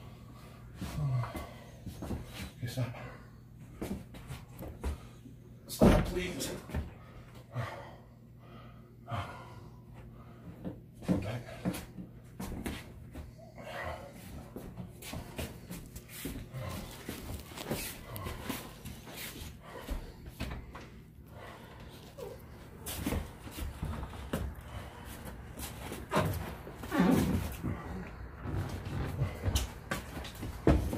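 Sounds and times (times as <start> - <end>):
men breathing hard and grunting: 0.0 - 4.0, 6.8 - 12.0, 12.8 - 30.9.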